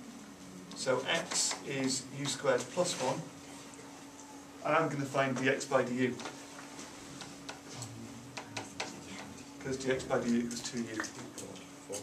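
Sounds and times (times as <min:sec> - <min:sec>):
marker pen tapping on whiteboard: 0:08.3 - 0:09.3.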